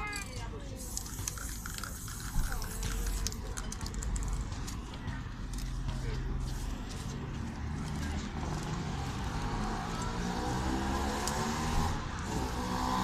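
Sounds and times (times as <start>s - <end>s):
low street rumble: 0.0s - 13.0s
vehicle engine accelerating: 7.3s - 13.0s.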